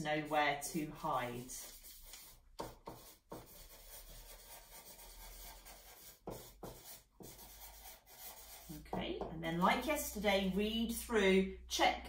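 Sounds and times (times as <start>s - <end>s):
marker pen scratching on paper: 0.2s - 8.9s.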